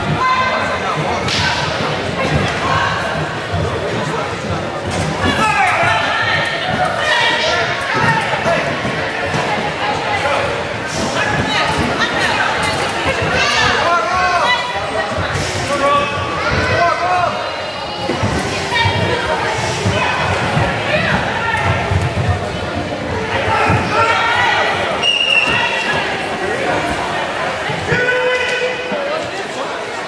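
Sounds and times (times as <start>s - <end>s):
overlapping voices talking: 0.0s - 30.0s.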